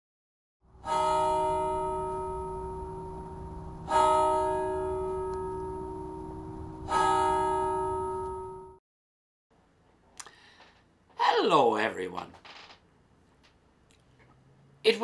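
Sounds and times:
church bell tolling: 0.8s - 8.8s.

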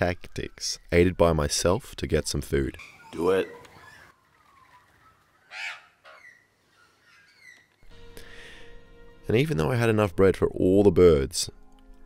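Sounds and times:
loud bird call: 2.8s - 7.8s.

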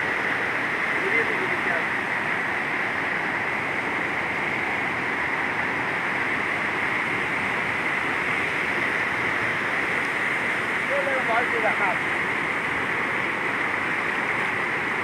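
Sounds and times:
turbulent water rushing: 0.0s - 15.0s.

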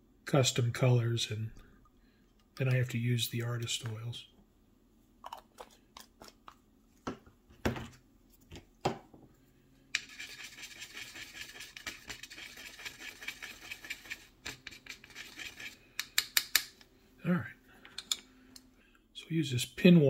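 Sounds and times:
wooden stick scraping paint on palette: 10.0s - 15.8s.

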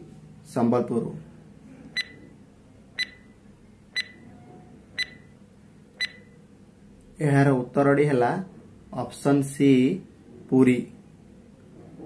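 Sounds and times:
short sharp beeping ticks: 3.0s - 3.3s, 4.0s - 4.2s, 5.0s - 5.3s, 6.0s - 6.3s.

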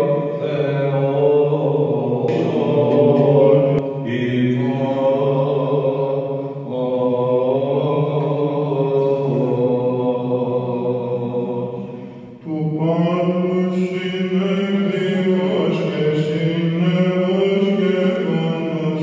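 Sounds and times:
men chanting: 0.0s - 19.0s.

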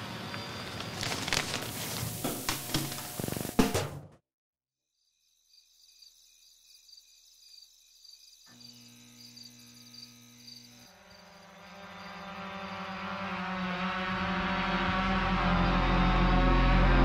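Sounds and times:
crickets chirping: 0.0s - 3.0s, 4.9s - 12.9s
drone rotors buzzing: 8.5s - 17.0s.

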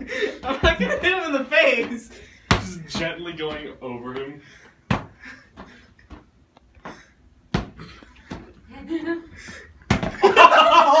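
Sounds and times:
ball thudding: 0.4s - 3.8s, 4.8s - 8.6s, 9.8s - 10.4s
loud laughter: 10.1s - 11.0s.

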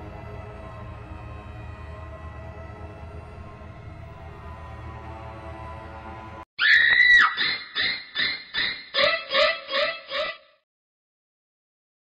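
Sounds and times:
eerie music: 0.0s - 6.4s
high-pitched shriek: 6.6s - 10.5s.

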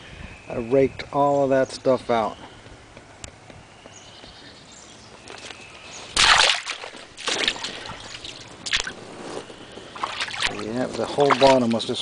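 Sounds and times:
creek water sloshing and splashing: 6.1s - 11.8s.

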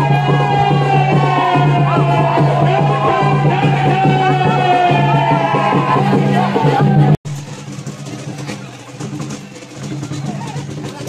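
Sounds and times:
loud music: 0.0s - 7.9s.

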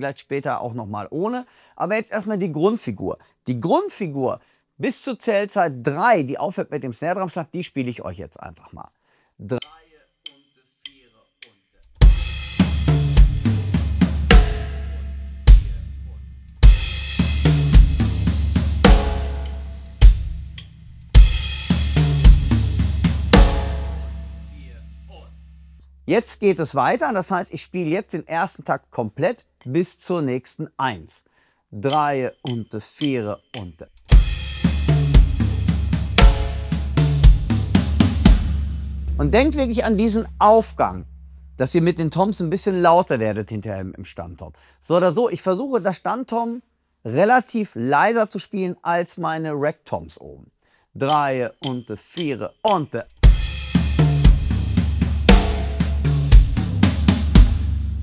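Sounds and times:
drum kit played slowly: 9.6s - 26.6s, 31.9s - 43.1s, 51.1s - 58.0s
crash cymbal ringing: 14.3s - 17.9s, 18.8s - 22.0s, 23.3s - 25.8s.

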